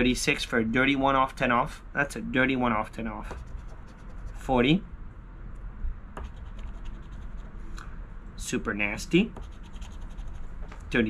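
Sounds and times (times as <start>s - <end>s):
scratching a lottery ticket: 3.3s - 4.6s, 6.3s - 7.5s, 9.4s - 10.5s.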